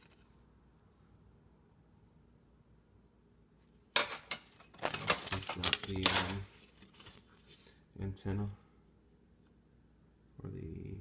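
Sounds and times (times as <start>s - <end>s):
circuit boards clattering: 4.0s - 6.5s.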